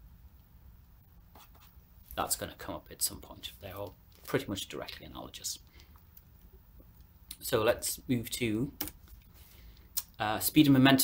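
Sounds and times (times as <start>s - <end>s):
low steady hum: 0.0s - 11.0s
stylus scratching and tapping: 1.3s - 1.8s.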